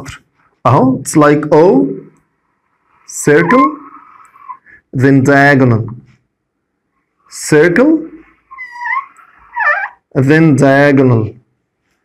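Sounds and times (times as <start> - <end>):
marker squeaking on a whiteboard: 3.0 - 4.8, 7.3 - 10.3.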